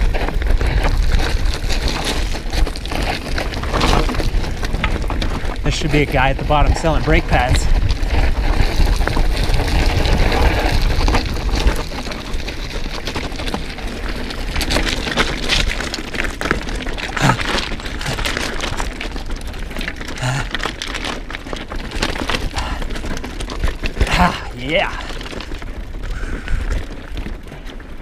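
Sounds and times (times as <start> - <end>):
wind rumble on microphone: 0.0 - 16.6
bike rattling: 0.0 - 28.0
bike tyres crunching over rocks: 0.0 - 28.0
rocks knocking: 0.0 - 28.0.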